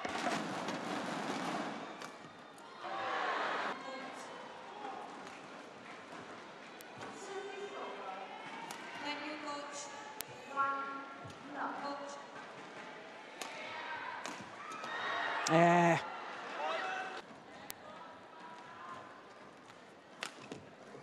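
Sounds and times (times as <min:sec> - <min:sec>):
crowd noise: 0:00.0 - 0:21.0
racket hitting shuttlecock: 0:08.6 - 0:08.9.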